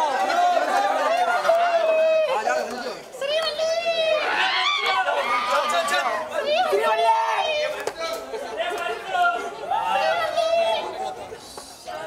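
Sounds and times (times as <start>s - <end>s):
crowd chatter: 0.0s - 12.0s.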